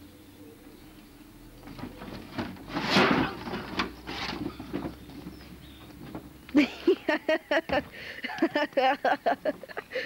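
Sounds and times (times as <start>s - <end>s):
wooden planks knocking and creaking: 1.6s - 6.6s.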